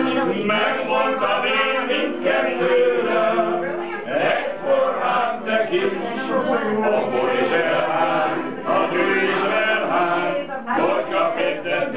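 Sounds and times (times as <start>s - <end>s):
men's choir singing: 0.0s - 11.9s.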